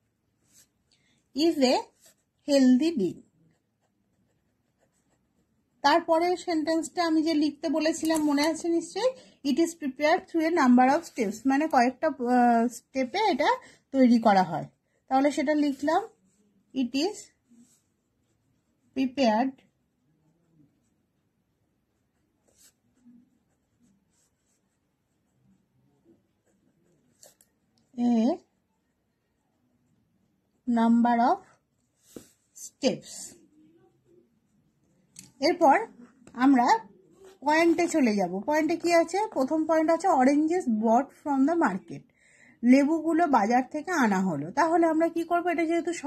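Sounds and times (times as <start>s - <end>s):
pen scratching on paper: 1.4s - 27.7s
person speaking: 5.8s - 19.7s, 35.0s - 42.0s.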